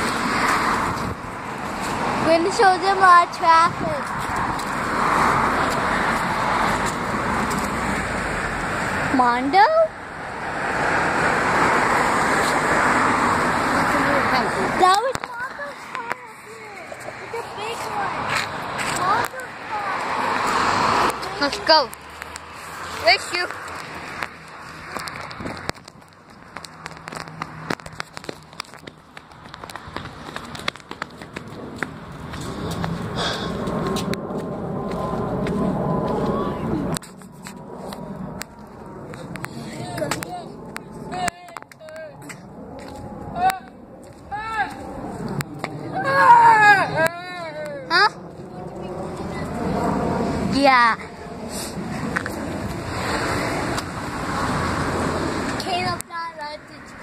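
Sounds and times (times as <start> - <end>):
crackling clicks: 21.0 - 33.0
child squealing: 45.9 - 48.2.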